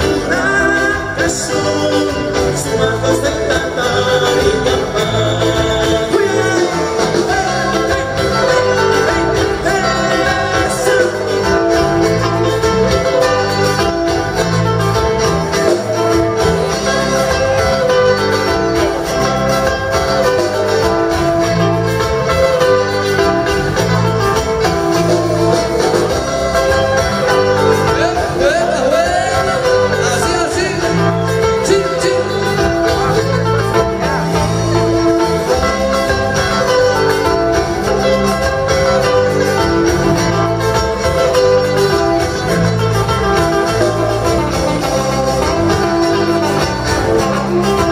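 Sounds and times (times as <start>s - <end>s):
electric bass notes: 0.0s - 47.9s
live band music: 0.0s - 47.9s
plucked guitars: 0.0s - 47.9s.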